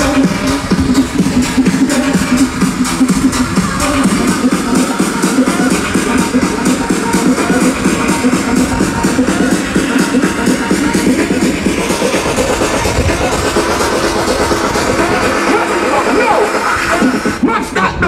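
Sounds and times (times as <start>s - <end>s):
electronic dance music: 0.0s - 18.0s.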